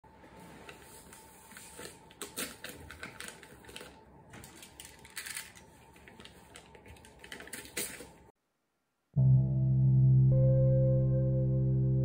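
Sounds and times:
paper wrapping crinkling: 0:00.5 - 0:08.3.

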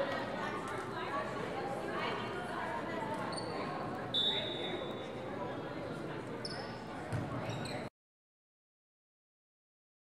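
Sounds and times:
sneakers squeaking on court: 0:06.4 - 0:07.9.

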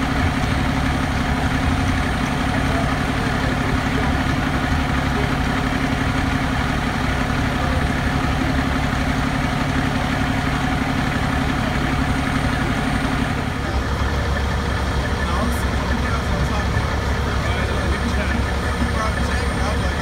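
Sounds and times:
diesel engine idling: 0:00.0 - 0:20.0.

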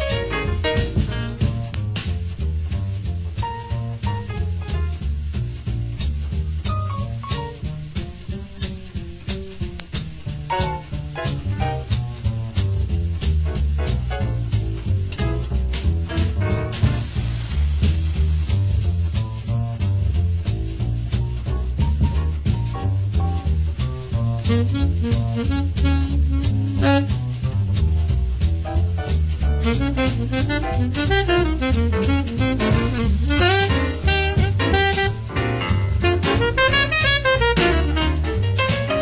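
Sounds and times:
drums: 0:00.0 - 0:39.0
swing jazz quartet: 0:00.0 - 0:39.0
walking double bass: 0:00.0 - 0:39.0
alto saxophone: 0:24.4 - 0:27.4, 0:29.6 - 0:39.0.

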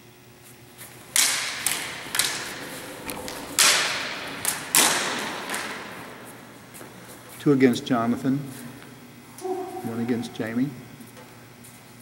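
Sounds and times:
swords clashing: 0:01.1 - 0:06.6.

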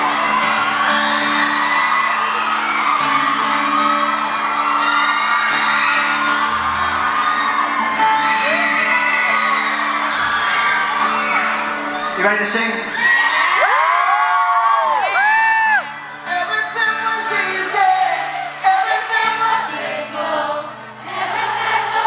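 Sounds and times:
pop-rock band playing: 0:00.0 - 0:13.6
crowd screaming and whooping: 0:00.0 - 0:22.0.

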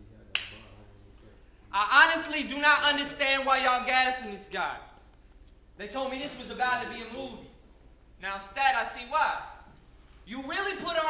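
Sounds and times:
man speaking: 0:00.0 - 0:04.9, 0:05.8 - 0:07.6, 0:08.2 - 0:11.0.

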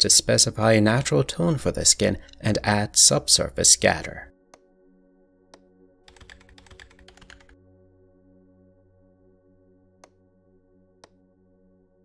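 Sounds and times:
quiet ambient background music: 0:00.0 - 0:12.0
computer keyboard typing: 0:06.1 - 0:07.6.

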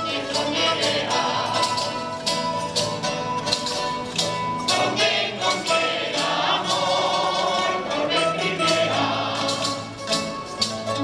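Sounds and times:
male chorus singing: 0:00.0 - 0:02.2, 0:04.6 - 0:10.0
strummed guitars: 0:00.0 - 0:11.0.

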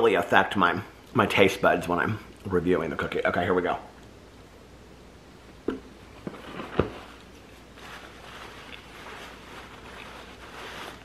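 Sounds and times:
soft chewing: 0:08.4 - 0:10.4.

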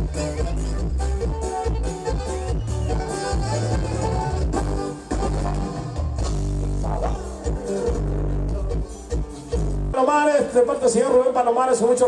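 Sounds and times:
heavy stepping bass line: 0:00.0 - 0:10.0
sustained keyboard chords: 0:00.0 - 0:10.0
live dance band through a pa: 0:00.0 - 0:12.0.

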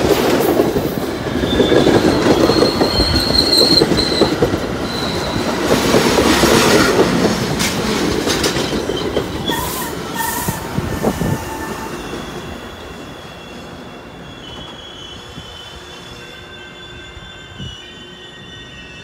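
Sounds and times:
train wheels knocking: 0:00.0 - 0:09.6
train rolling past: 0:00.0 - 0:19.0
high squeal of wheels and brakes: 0:01.2 - 0:05.8, 0:08.4 - 0:19.0.

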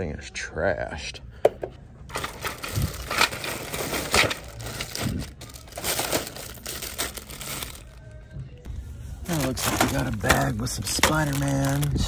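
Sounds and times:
plastic bags crinkling: 0:02.1 - 0:08.1, 0:09.3 - 0:12.0.

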